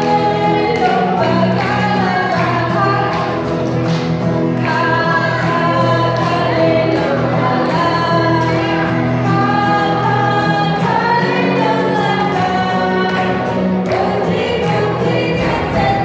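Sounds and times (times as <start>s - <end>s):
children singing: 0.0s - 3.5s, 4.4s - 16.0s
acoustic guitar: 0.0s - 16.0s.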